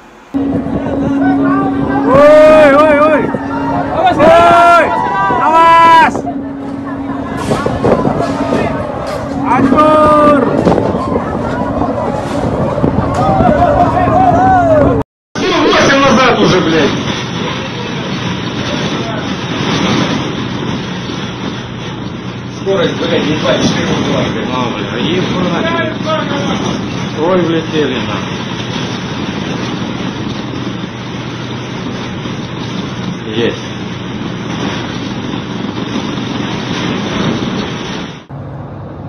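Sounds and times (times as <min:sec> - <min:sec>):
low hum: 0:00.0 - 0:39.0
steady rushing noise: 0:00.0 - 0:39.0
wind on microphone: 0:00.3 - 0:38.3
people's voices: 0:00.4 - 0:20.2.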